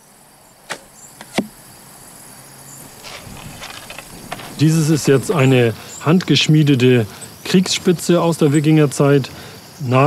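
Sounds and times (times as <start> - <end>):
crickets chirping: 0.0 - 10.0
arrow striking target: 0.6 - 1.6.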